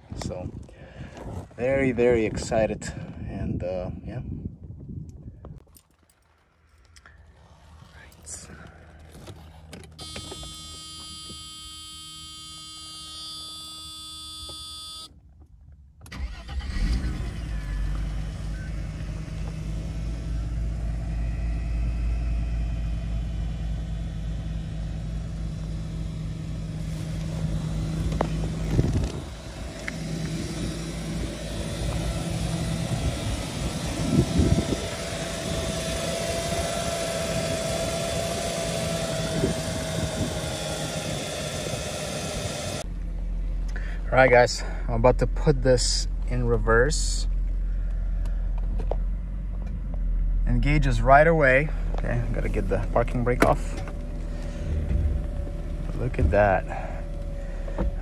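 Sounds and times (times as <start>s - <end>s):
car engine starting and idling: 5.6s - 58.0s.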